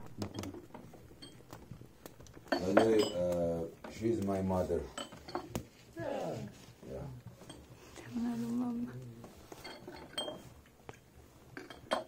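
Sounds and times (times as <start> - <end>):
small cups clinking on tray: 0.1 - 4.2, 4.8 - 5.8, 9.5 - 10.7, 11.5 - 12.0.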